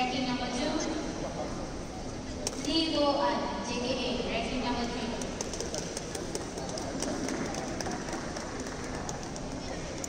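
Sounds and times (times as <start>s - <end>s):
indoor sports hall background noise: 0.0s - 10.0s.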